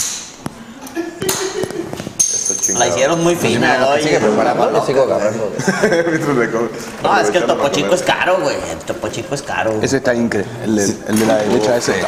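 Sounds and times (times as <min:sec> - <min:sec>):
glass bottles and cups clinking: 0:01.2 - 0:03.2.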